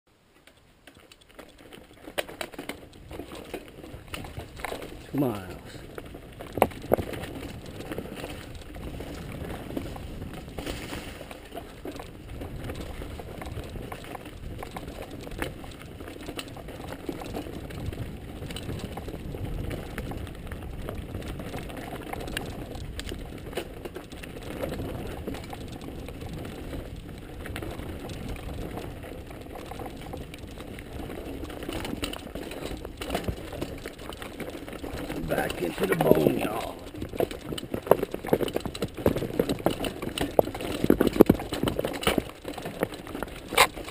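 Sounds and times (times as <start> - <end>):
bike rattling: 0.2 - 43.9
bike tyres rumbling on dirt: 0.9 - 43.9.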